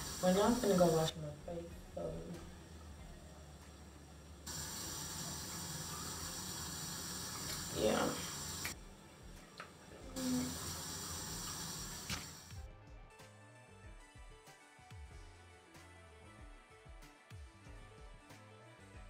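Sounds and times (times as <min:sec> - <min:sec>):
water running from a tap: 0:00.0 - 0:01.2, 0:04.4 - 0:08.8, 0:09.4 - 0:12.6
music: 0:00.0 - 0:19.0.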